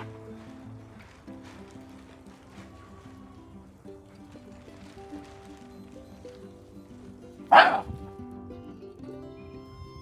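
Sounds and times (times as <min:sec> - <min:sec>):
soft background music: 0:00.0 - 0:10.0
dog barking: 0:07.5 - 0:08.0.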